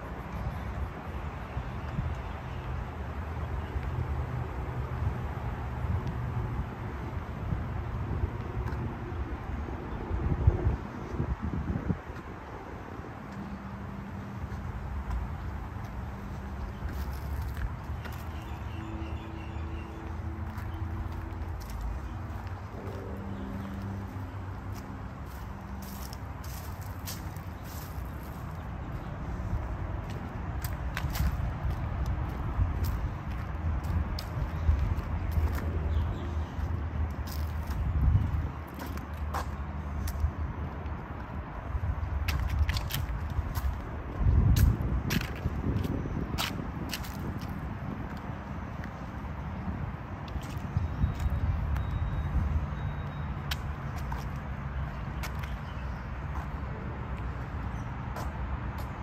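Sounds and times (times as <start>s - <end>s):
wind rumble: 4.9s - 18.2s, 19.6s - 39.3s, 40.0s - 52.6s.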